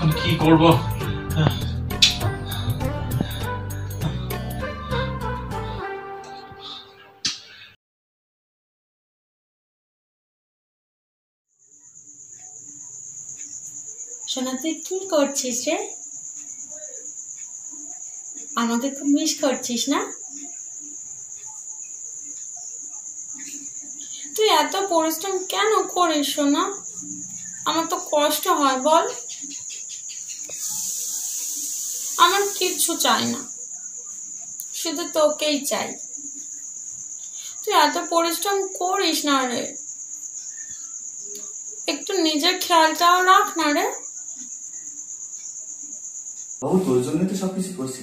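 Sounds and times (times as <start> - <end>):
crickets trilling: 0.0 - 5.2, 11.6 - 48.0.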